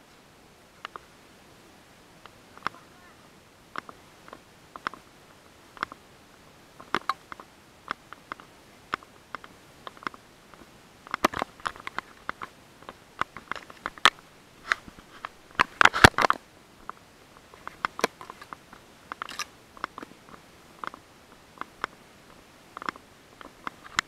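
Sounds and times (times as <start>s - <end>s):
grass crackling and rustling: 0.0s - 24.0s.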